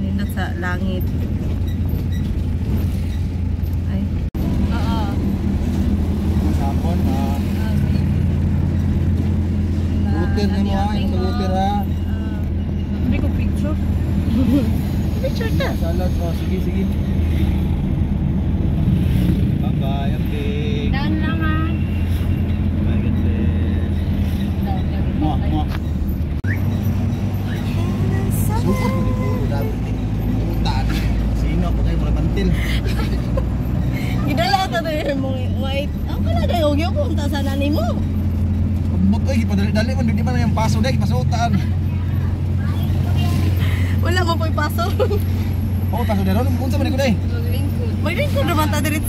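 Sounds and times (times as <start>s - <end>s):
vehicle engine and road noise: 0.0s - 49.0s
voices talking: 19.6s - 49.0s.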